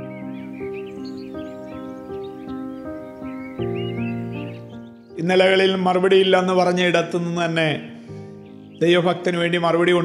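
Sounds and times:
birds chirping: 0.0 - 10.0
soft music of held chords: 0.0 - 10.0.

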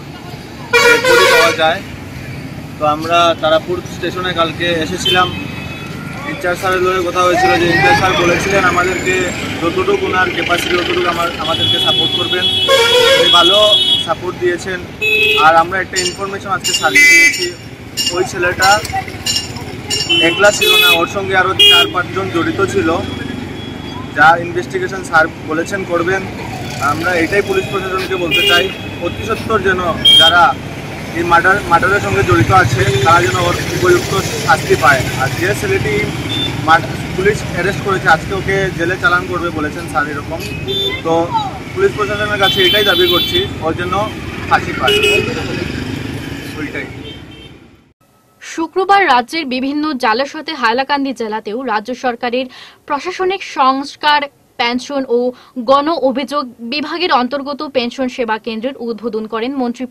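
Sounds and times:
street background noise: 0.0 - 59.9
vehicle horn honking: 0.7 - 1.6, 11.4 - 14.1, 15.0 - 18.2, 19.9 - 22.1, 27.4 - 29.4, 30.0 - 30.5, 40.4 - 41.1, 41.9 - 43.5, 44.8 - 45.5
man speaking: 1.0 - 1.9, 2.8 - 5.5, 6.1 - 19.0, 20.1 - 23.3, 24.1 - 45.8, 46.4 - 47.0
man talking: 1.2 - 1.9, 2.8 - 5.5, 6.1 - 18.9, 20.2 - 23.2, 24.1 - 45.8, 46.5 - 47.0.

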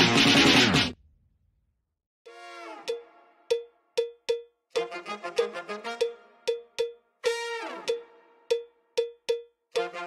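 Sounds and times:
pitched cowbell-like hits: 2.9 - 7.1, 7.8 - 10.0.

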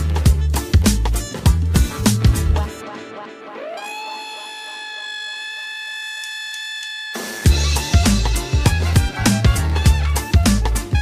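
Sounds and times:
sustained electronic tone: 2.4 - 7.4.

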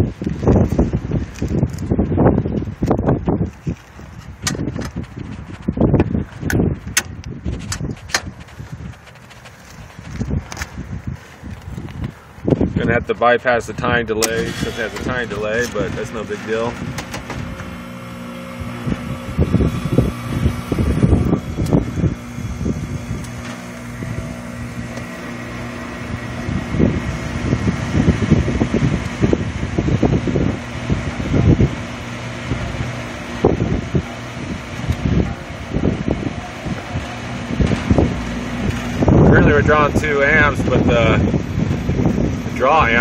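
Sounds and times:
condenser unit humming: 0.0 - 43.0
fan air buffeting microphone: 0.0 - 43.0.

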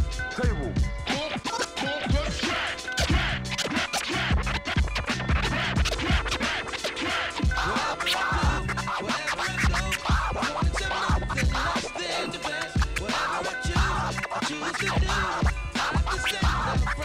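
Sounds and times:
drum and bass beat: 0.0 - 17.0
turntable scratching: 0.0 - 17.0.

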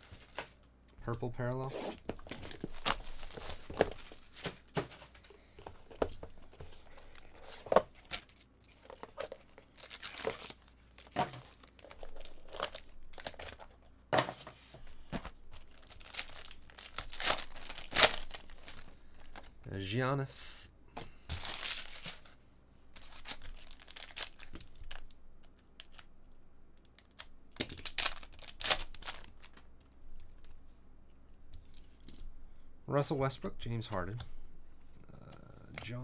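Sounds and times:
plastic wrap and foil tearing: 8.0 - 13.6, 15.6 - 18.9, 23.0 - 25.1, 27.0 - 29.6.

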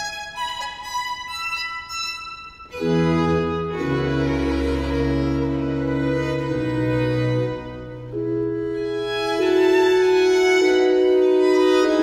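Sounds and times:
string ensemble with cello and bass: 2.7 - 12.0.

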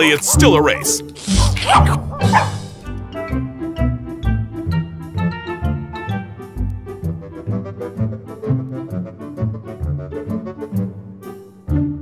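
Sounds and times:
upbeat background music: 0.0 - 12.0
dog bark: 1.2 - 3.0.

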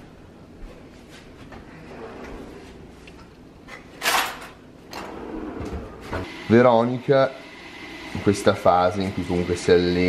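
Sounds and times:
cutlery drawer sliding open: 4.0 - 6.3.

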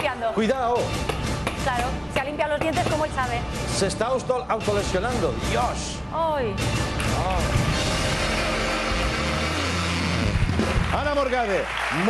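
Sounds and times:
music playing: 0.0 - 12.0
studio audience applauding: 7.0 - 12.0.

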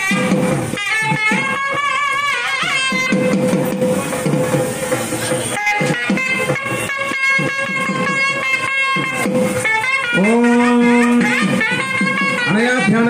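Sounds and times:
quick drum strokes: 0.0 - 13.0.

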